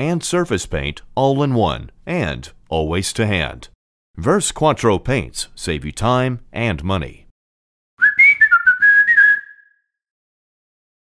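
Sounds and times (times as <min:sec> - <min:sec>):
whistled jingle: 0:08.0 - 0:10.0.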